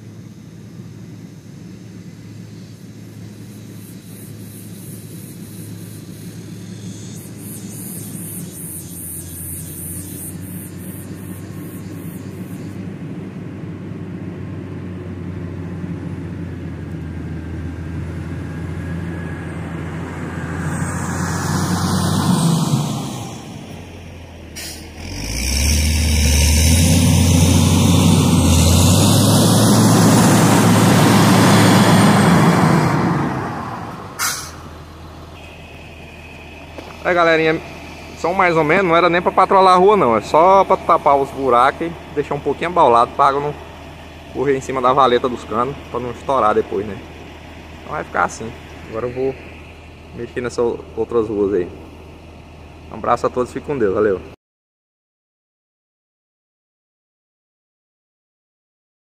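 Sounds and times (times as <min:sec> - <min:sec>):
diesel engine of grader driving: 0:00.0 - 0:54.4.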